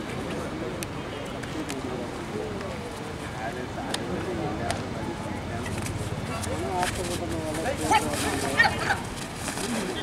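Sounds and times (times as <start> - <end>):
outdoor crowd noise: 0.0 - 10.0.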